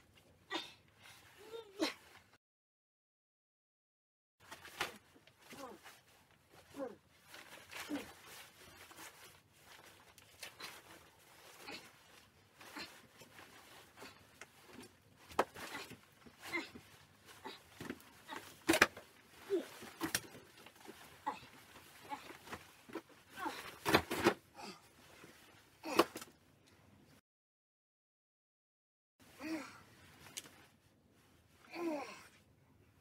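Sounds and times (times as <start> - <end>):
bulky clothing rustling: 4.4 - 26.5.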